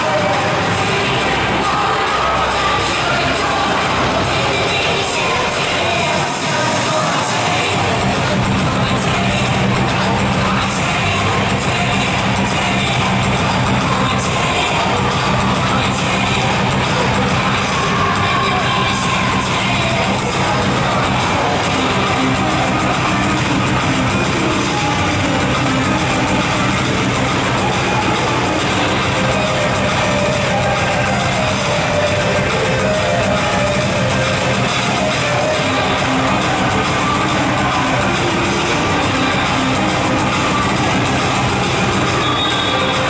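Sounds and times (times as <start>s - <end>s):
crowd noise: 0.0s - 43.0s
music over loudspeakers: 0.0s - 43.0s.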